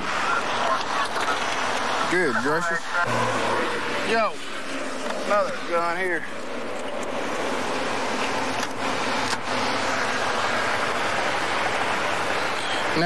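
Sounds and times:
highway traffic rushing by: 0.0 - 13.0.

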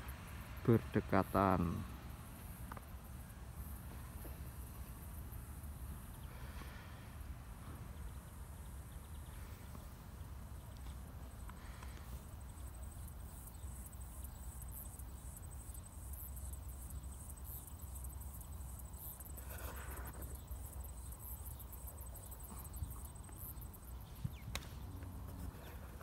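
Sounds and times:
insect chirping: 0.0 - 26.0.

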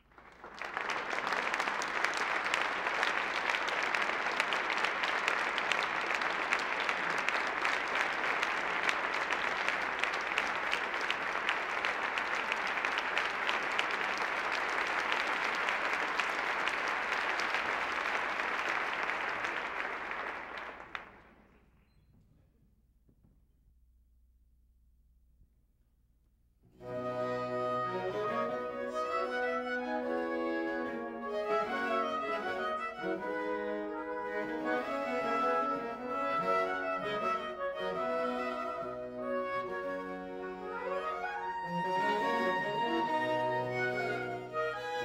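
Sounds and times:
audience applauding: 0.0 - 21.6, 26.8 - 45.0.

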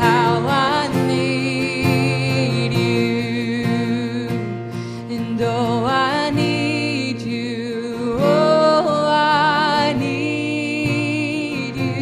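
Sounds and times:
acoustic guitar: 0.0 - 12.0
woman singing long notes: 0.0 - 12.0.

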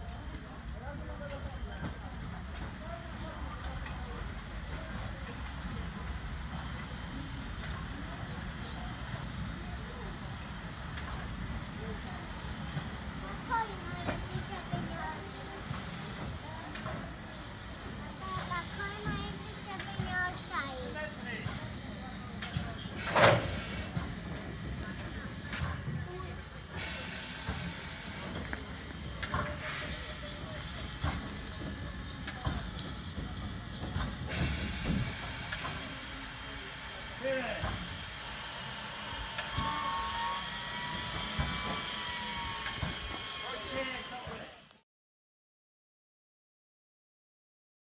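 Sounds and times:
steam locomotive rumble: 0.2 - 44.7
hissing steam: 4.1 - 44.7.

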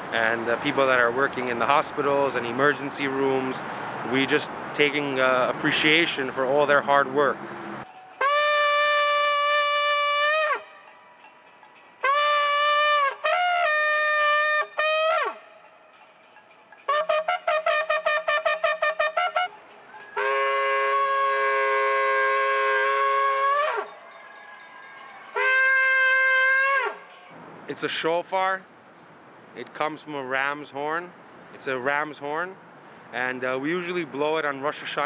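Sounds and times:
shofar blasts: 7.9 - 11.1, 12.0 - 15.7, 16.9 - 24.1, 25.3 - 27.2.

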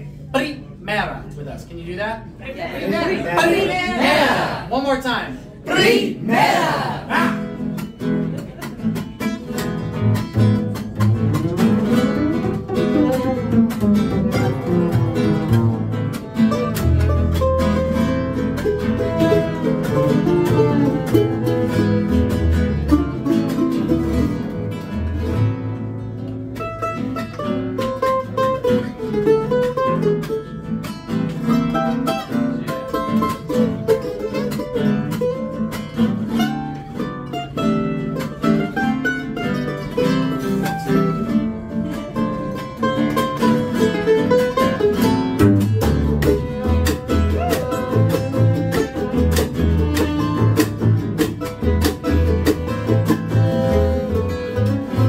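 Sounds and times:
strummed acoustic guitar: 5.5 - 55.0
upright bass notes: 5.7 - 55.0
mandolin: 7.1 - 55.0.

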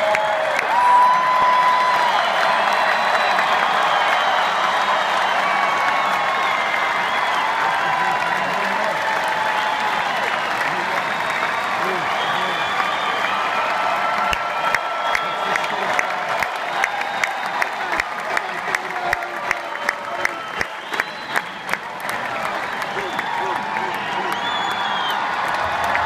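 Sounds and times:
crowd applauding and cheering: 0.0 - 26.0
whistles: 2.2 - 7.6, 11.1 - 13.5, 14.6 - 15.9, 19.4 - 25.4.

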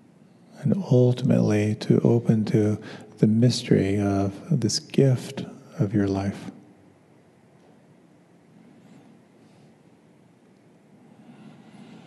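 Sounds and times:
low room rumble: 0.0 - 12.0
soft hiss: 0.0 - 12.0.

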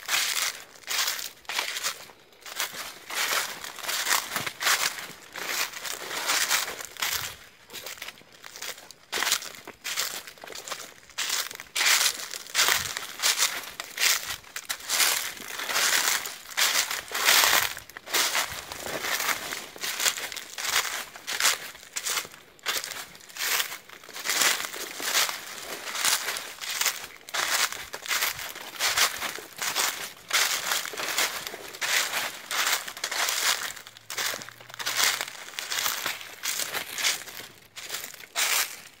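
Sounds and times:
footsteps crunching dry leaves: 0.0 - 39.0.

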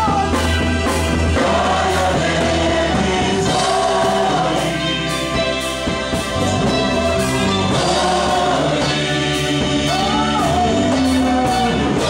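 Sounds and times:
man singing lead: 0.0 - 0.6, 6.6 - 12.0
band with bass line: 0.0 - 12.0
gospel choir singing: 0.0 - 12.0.

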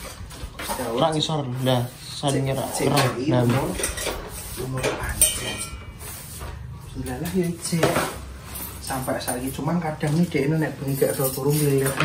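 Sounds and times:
kitchenware clinking and clattering: 0.0 - 12.0.

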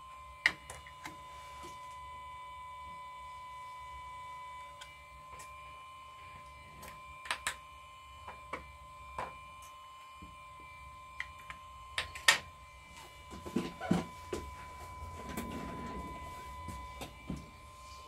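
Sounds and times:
faint high-pitched electronic whine: 0.0 - 18.0.

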